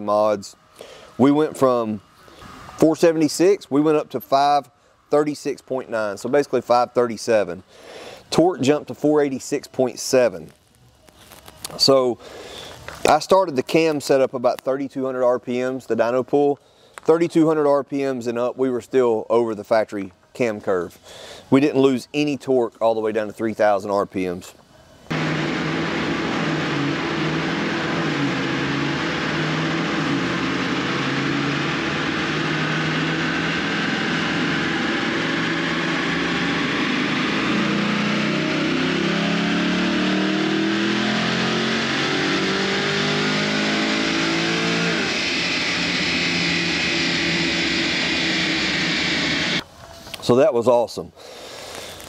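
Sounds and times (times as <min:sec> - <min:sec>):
engine at full throttle: 0:25.1 - 0:49.6.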